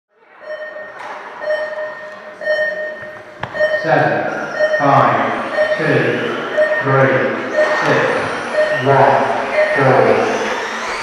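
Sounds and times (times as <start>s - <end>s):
hall noise: 0.4s - 11.0s
pitched beeping tone: 0.4s - 11.0s.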